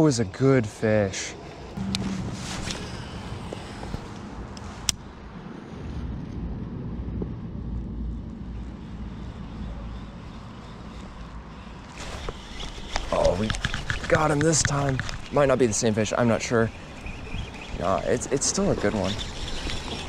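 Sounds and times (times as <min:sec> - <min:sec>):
wind on microphone: 0:01.7 - 0:20.0.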